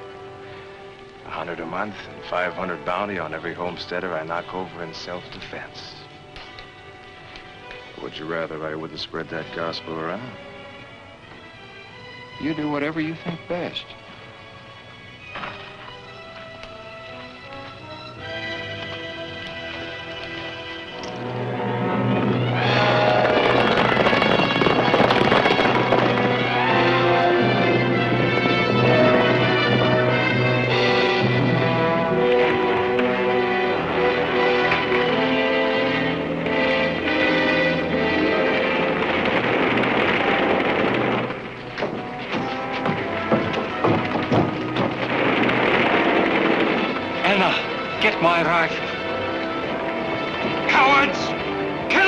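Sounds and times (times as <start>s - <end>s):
background music: 0.0s - 52.0s
fire crackling: 0.0s - 52.0s
horses galloping: 15.4s - 52.0s
knocks: 38.2s - 48.1s.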